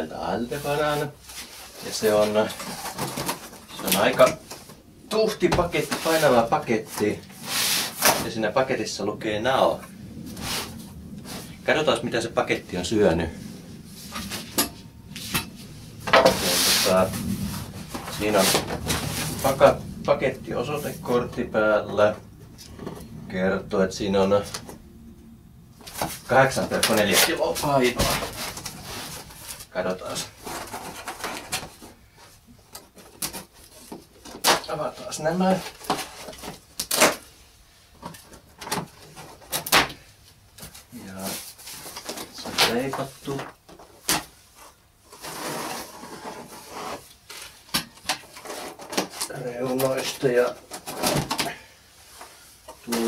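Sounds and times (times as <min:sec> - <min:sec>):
cardboard box scraping and rustling: 0:00.6 - 0:04.6, 0:15.2 - 0:21.5, 0:25.8 - 0:32.2, 0:44.6 - 0:47.6
plastic strap snapping and scraping: 0:35.7 - 0:37.2.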